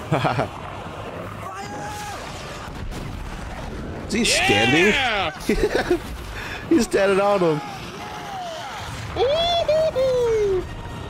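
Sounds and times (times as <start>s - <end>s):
person shouting a cheer: 4.3s - 5.3s.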